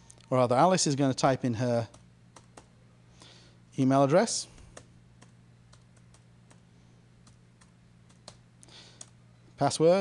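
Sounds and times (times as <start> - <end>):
low electrical hum: 0.0 - 10.0
keyboard typing: 1.8 - 2.7, 4.6 - 6.6, 7.2 - 8.4, 9.0 - 9.2.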